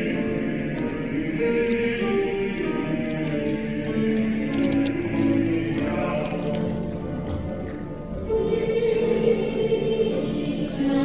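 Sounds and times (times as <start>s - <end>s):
mixed choir singing: 0.0s - 7.5s, 8.2s - 11.0s.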